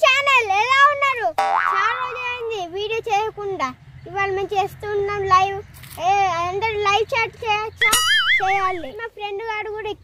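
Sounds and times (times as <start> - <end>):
child's sing-song voice: 0.0 - 10.0
rising comic sound effect: 1.4 - 2.3, 7.8 - 8.8.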